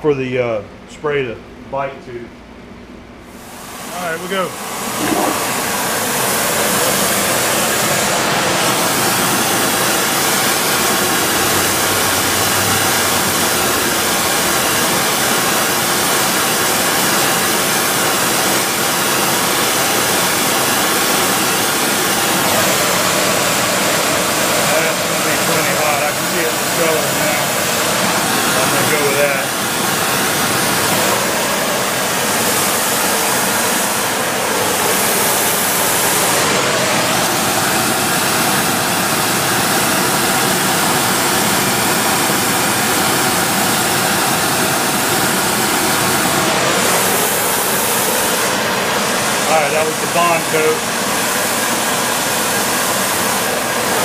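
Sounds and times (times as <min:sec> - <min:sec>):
spray gun rushing hiss: 0:03.3 - 0:54.0.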